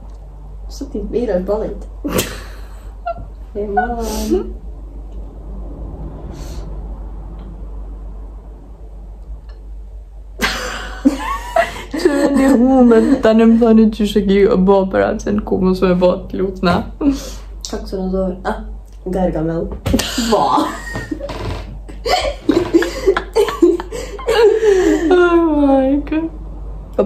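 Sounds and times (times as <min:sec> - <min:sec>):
woman laughing breathily: 0:10.4 - 0:13.2, 0:21.9 - 0:25.3.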